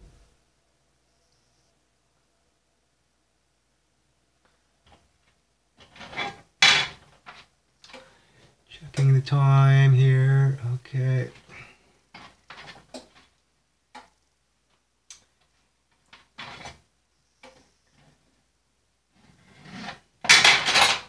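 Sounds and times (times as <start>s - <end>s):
baking sheet clatter: 5.8s - 8.1s, 11.4s - 13.4s, 15.9s - 16.8s, 19.3s - 21.0s.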